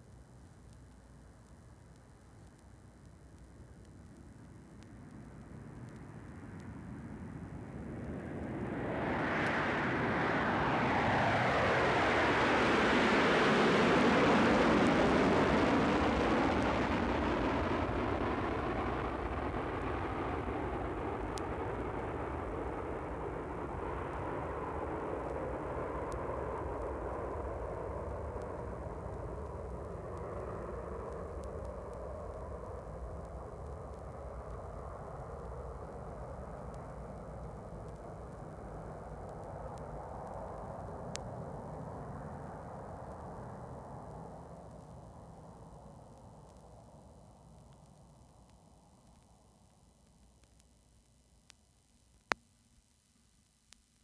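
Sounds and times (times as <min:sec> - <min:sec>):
airliner passing overhead: 0:07.4 - 0:32.8.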